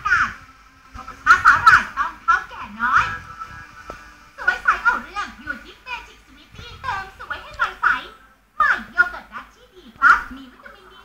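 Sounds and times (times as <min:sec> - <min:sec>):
high-pitched voices on television: 0:00.0 - 0:11.0.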